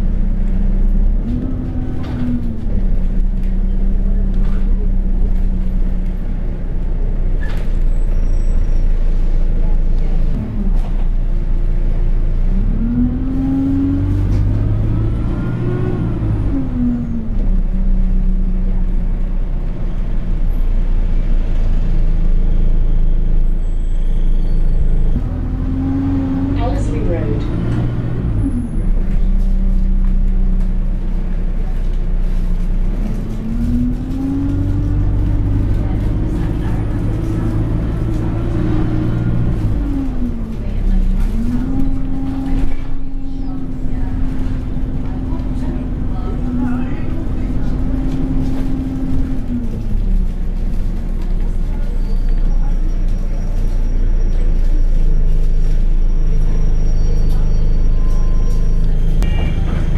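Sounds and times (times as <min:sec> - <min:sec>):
bus diesel engine running: 0:00.0 - 0:59.9.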